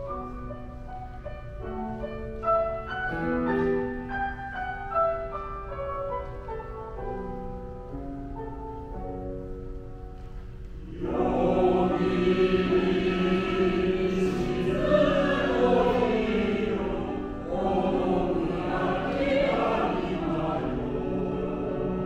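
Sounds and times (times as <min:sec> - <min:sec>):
piano accompaniment: 0:00.0 - 0:22.0
choir singing: 0:10.8 - 0:22.0.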